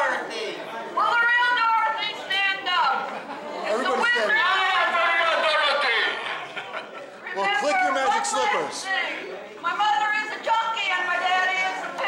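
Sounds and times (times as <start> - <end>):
people chattering: 0.0 - 12.0
woman speaking through a megaphone: 1.0 - 3.0, 3.7 - 6.3, 7.2 - 12.0.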